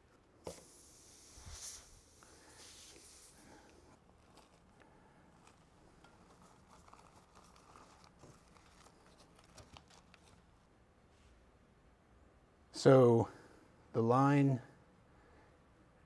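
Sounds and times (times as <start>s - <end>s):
small clicks and rustles of handling: 3.6s - 10.7s.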